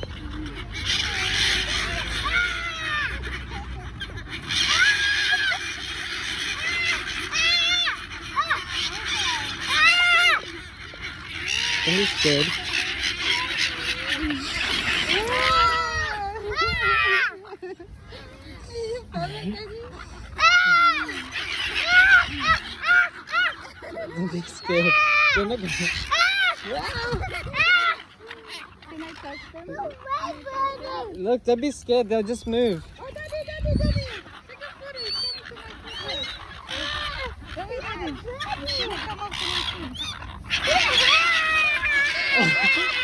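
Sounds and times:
gulls squawking: 0:00.0 - 0:43.0
toddler wailing: 0:40.9 - 0:43.0.

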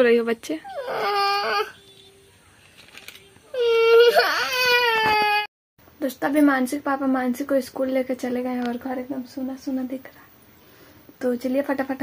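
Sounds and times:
small child crying: 0:00.7 - 0:01.8, 0:03.5 - 0:05.5.

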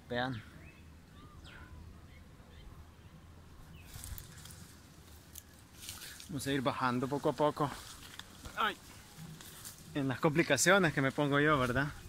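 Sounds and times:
faint clicks and rustles: 0:03.8 - 0:12.0.

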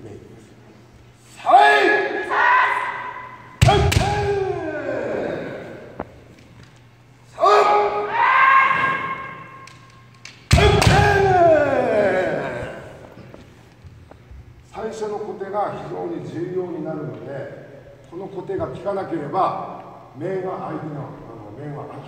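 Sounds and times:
kiai shouts: 0:01.3 - 0:05.9, 0:07.3 - 0:09.6, 0:10.5 - 0:12.9.

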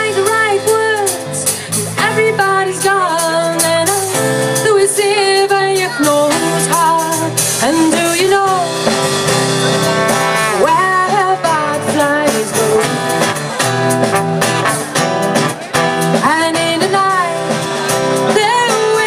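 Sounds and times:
bass guitar: 0:00.0 - 0:19.0
drums: 0:00.0 - 0:19.0
trombone melody: 0:12.7 - 0:15.2.

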